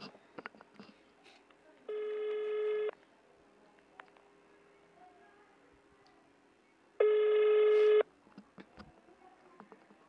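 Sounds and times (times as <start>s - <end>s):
phone call ringing tone: 1.9s - 2.9s, 7.0s - 8.1s.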